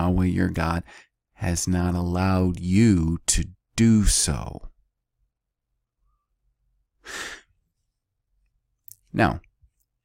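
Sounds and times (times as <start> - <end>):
breath close to microphone: 7.0 - 7.6.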